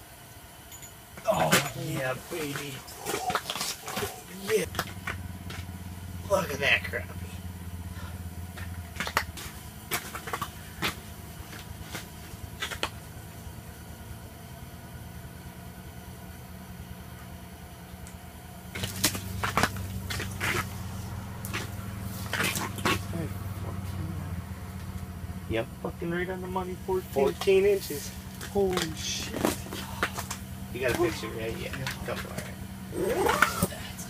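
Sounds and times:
low hum: 0.0s - 34.0s.

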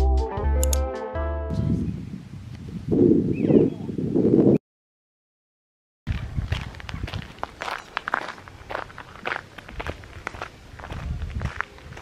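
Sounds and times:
flip-flop footsteps on gravelly path: 6.1s - 12.0s.

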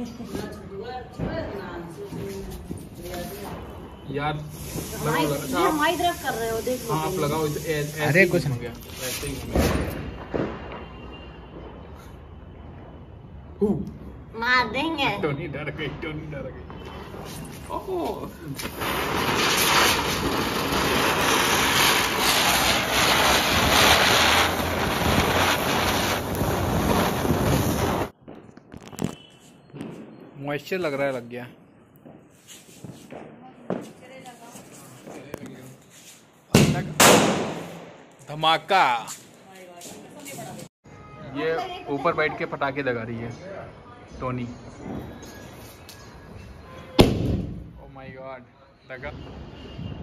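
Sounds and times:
firecracker fuse hissing: 1.3s - 12.5s, 16.8s - 28.2s, 32.3s - 33.2s.

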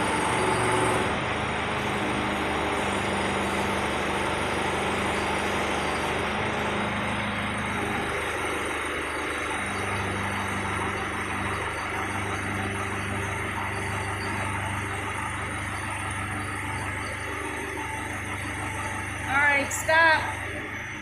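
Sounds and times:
heavy machine engine humming: 0.0s - 21.0s.

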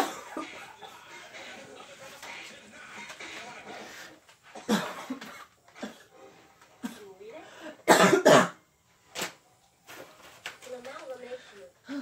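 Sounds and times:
person coughing loudly: 0.0s - 0.6s, 4.6s - 6.1s, 7.8s - 8.6s.

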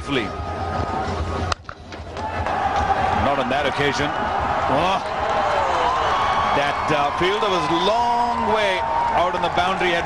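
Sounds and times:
televised cricket match noise: 0.0s - 10.0s.

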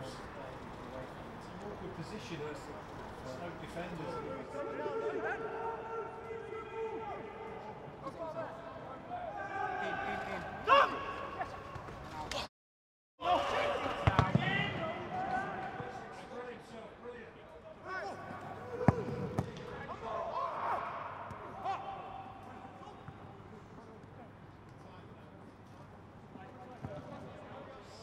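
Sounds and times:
footballers shouting: 9.0s - 11.5s, 13.2s - 16.2s, 17.8s - 23.1s
football kicked thud: 14.0s - 14.4s.

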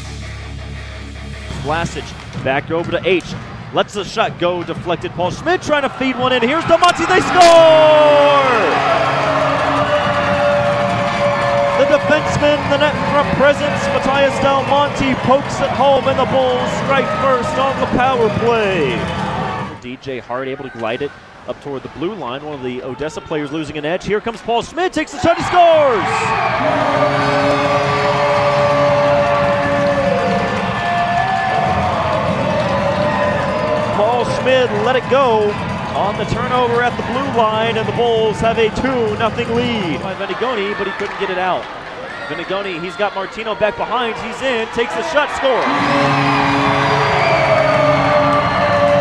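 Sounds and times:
crowd cheering: 4.5s - 19.8s, 25.0s - 49.0s
goal siren: 26.3s - 36.0s, 45.5s - 49.0s.

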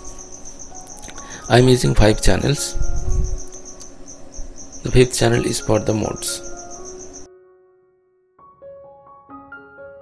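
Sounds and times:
faint high-pitched pulsing chirp: 0.0s - 7.3s.

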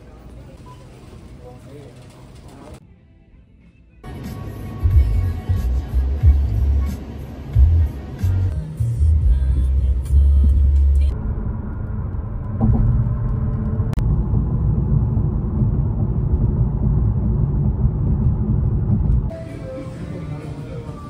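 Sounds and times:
road and tyre rumble in car: 4.1s - 19.3s
music with heavy bass beat: 4.2s - 7.0s, 7.6s - 11.2s.

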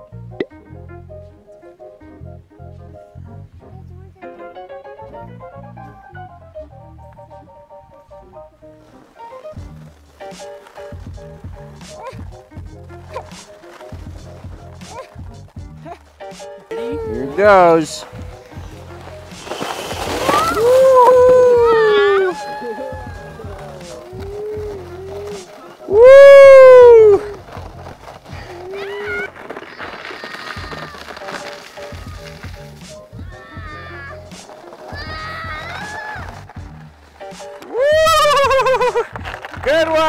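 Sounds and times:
sled scraping on snow: 8.3s - 40.0s
child squealing with delight: 16.7s - 18.4s, 20.1s - 27.4s, 28.5s - 32.5s, 33.2s - 34.2s, 34.9s - 36.4s, 37.7s - 39.0s.

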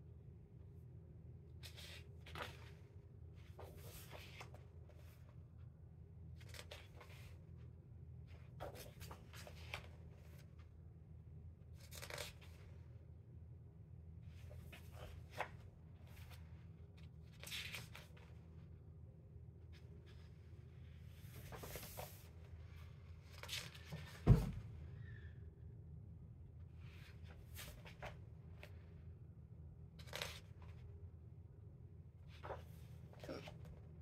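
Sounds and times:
steady low hum: 0.0s - 34.0s
book pages turning: 1.6s - 2.8s, 3.4s - 5.2s, 6.4s - 7.4s, 8.4s - 10.5s, 11.8s - 12.7s, 14.4s - 18.4s, 21.2s - 22.4s, 23.2s - 24.2s, 27.0s - 28.7s, 30.0s - 30.8s, 32.3s - 33.7s.

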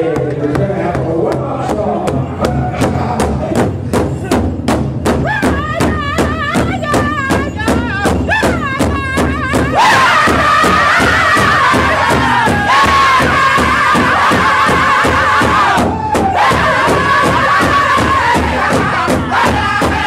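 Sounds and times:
large hide drum beating: 0.0s - 20.0s
group singing high-pitched song: 5.3s - 20.0s.

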